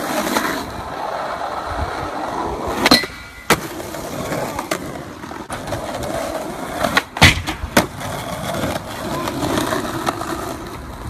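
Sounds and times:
skateboard wheels rolling on asphalt: 0:00.0 - 0:11.0.

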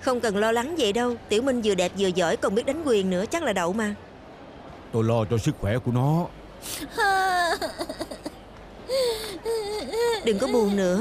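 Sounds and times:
woman crying and sobbing: 0:06.7 - 0:11.0.

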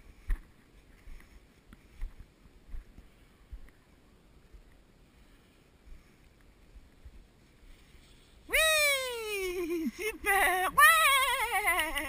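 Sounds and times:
woman's high-pitched exclamation: 0:08.5 - 0:12.0.

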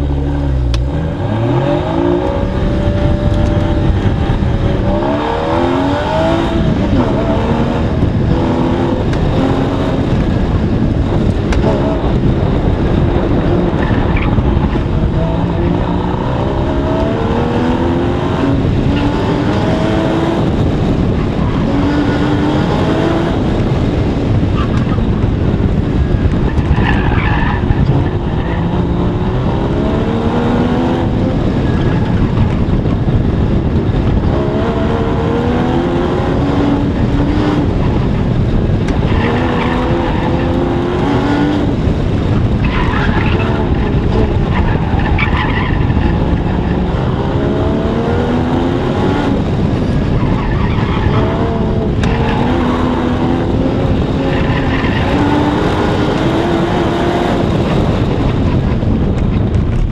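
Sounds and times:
sports car engine revving: 0:00.0 - 0:59.1
tires squealing: 0:11.6 - 0:17.6, 0:24.2 - 0:32.8, 0:38.8 - 0:48.6, 0:49.4 - 0:58.8.

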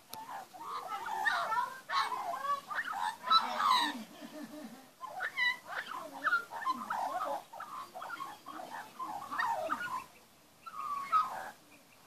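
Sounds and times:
magpie warbling: 0:05.0 - 0:11.6.

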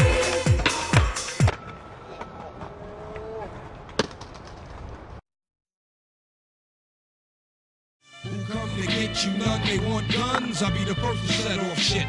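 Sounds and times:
outdoor plaza ambience: 0:00.0 - 0:05.2.

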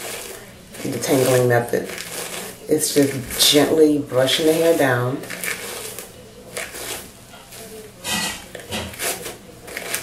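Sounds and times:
brush rustling through hair: 0:00.0 - 0:07.9.

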